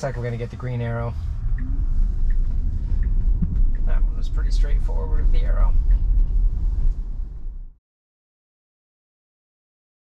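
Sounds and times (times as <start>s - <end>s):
road and tyre rumble in car: 0.0s - 7.8s.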